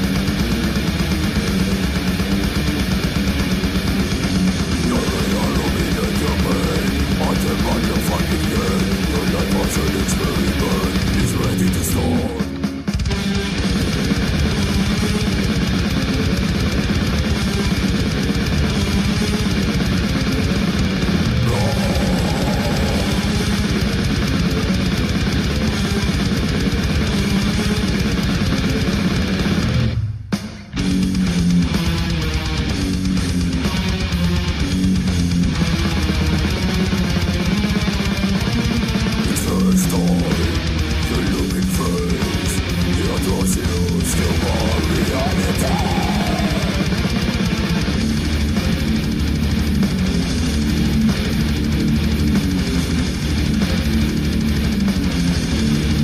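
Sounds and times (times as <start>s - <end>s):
death metal music: 0.0s - 56.0s.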